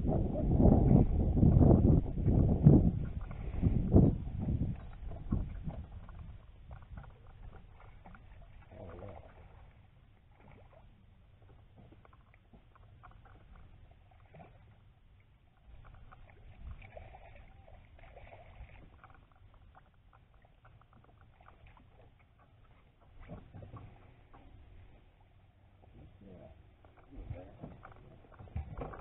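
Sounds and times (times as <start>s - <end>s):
wind rumble on microphone: 0.0s - 9.7s, 15.6s - 19.2s, 25.9s - 29.0s.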